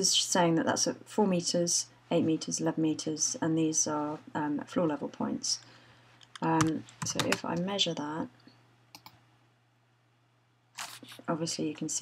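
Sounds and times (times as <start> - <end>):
faint electrical hum: 0.0 - 12.0
short breath: 5.6 - 6.2
computer mouse click: 8.9 - 9.2.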